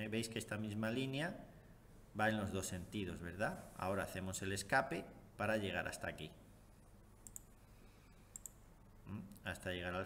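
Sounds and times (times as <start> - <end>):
faint computer mouse clicks: 7.2 - 7.6, 8.2 - 8.6.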